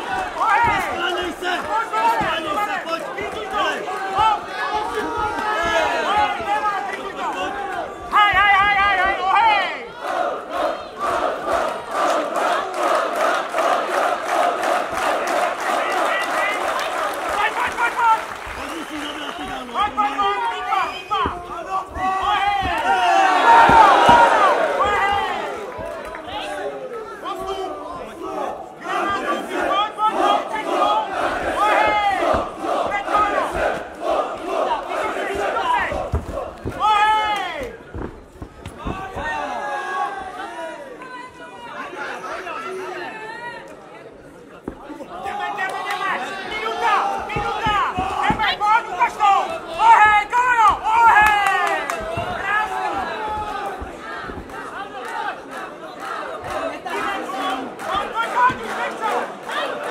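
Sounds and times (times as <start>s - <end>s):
crowd chanting in rhythm: 0.0s - 18.2s, 19.0s - 40.9s, 45.0s - 59.9s
loud shout: 0.0s - 37.8s, 45.1s - 55.4s
faint claps: 11.0s - 20.3s, 22.6s - 26.6s, 50.4s - 59.9s.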